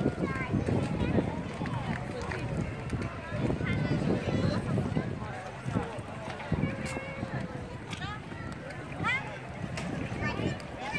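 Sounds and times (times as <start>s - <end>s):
outdoor background noise: 0.0s - 10.9s
passers-by chattering: 0.0s - 10.9s.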